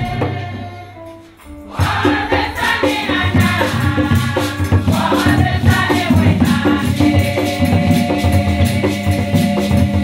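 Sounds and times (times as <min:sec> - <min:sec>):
women's choir singing: 0:00.0 - 0:01.1, 0:01.7 - 0:10.0
hand percussion beat: 0:00.0 - 0:10.0.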